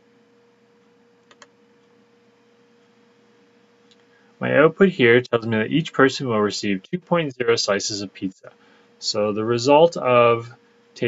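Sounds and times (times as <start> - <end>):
faint steady hum: 0.0 - 11.0
computer mouse clicks: 1.2 - 1.5.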